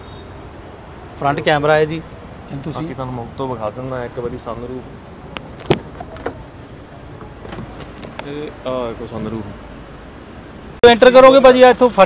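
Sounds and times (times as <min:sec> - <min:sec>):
car door latch clicking: 0:05.4 - 0:06.5
car door swinging open: 0:05.5 - 0:06.5, 0:07.1 - 0:08.2.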